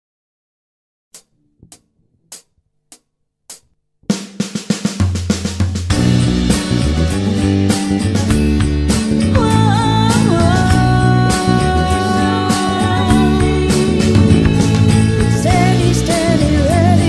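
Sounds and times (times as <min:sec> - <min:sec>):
drum kit groove with snare: 0:03.5 - 0:17.0
electric bass guitar line: 0:05.9 - 0:17.0.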